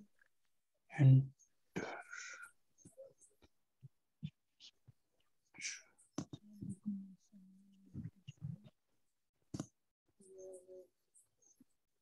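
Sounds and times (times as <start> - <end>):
person whispering: 1.8 - 3.1, 5.5 - 8.8, 10.2 - 11.0.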